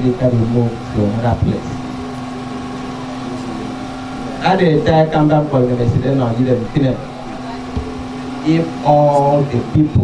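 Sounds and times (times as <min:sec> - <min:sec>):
steady mechanical hum: 0:00.0 - 0:10.0.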